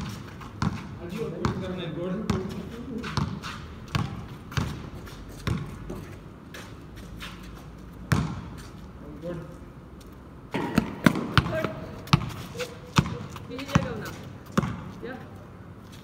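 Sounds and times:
basketball bouncing on concrete: 0.0s - 6.2s, 8.0s - 8.7s, 10.5s - 15.3s.

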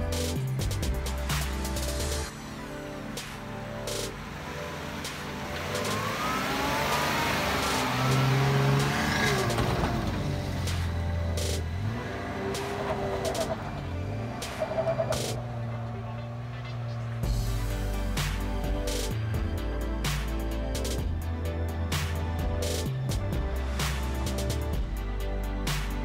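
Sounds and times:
car engine revving under load: 3.3s - 18.1s.

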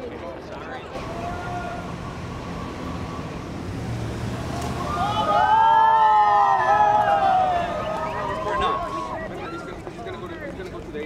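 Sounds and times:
sirens wailing: 1.0s - 9.2s
engine rumble: 1.0s - 11.0s.

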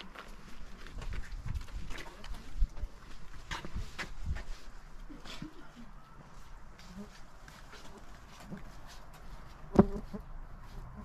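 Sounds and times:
wind buffeting microphone: 1.0s - 2.9s.

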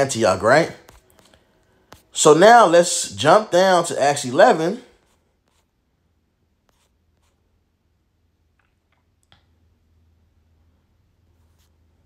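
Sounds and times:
faint low hum: 4.2s - 12.0s.

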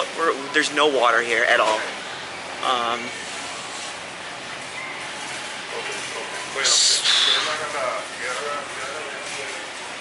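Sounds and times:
faint indistinct voices: 0.0s - 10.0s
steady ambient noise: 0.0s - 10.0s.

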